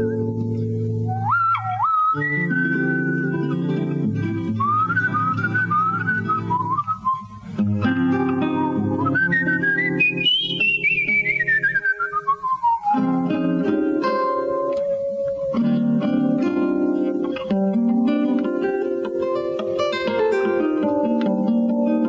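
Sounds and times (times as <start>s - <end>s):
person whistling a melody: 0.0s - 0.4s, 1.0s - 16.8s
fingerpicked jazz guitar: 0.0s - 22.0s.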